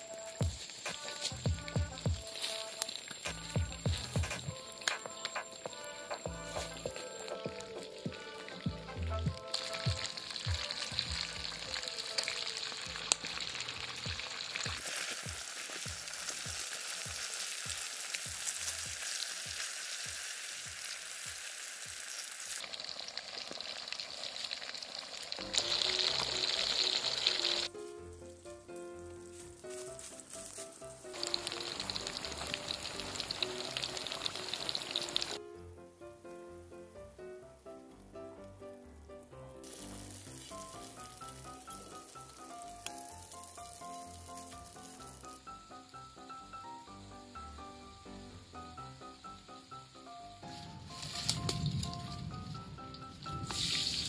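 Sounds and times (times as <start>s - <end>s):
fish deep-frying in oil: 0.0s - 27.7s, 31.0s - 35.4s, 39.6s - 46.2s, 47.4s - 54.0s.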